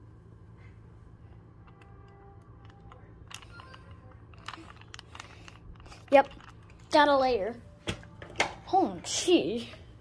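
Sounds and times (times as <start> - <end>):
puzzle cube plastic clicks: 2.5 - 6.7.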